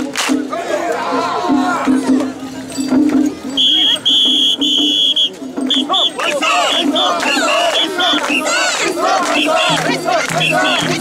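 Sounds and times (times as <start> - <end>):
crowd shouting a chant: 0.3 - 2.4, 5.6 - 11.0
whistle blasts: 3.6 - 8.7, 10.4 - 11.0.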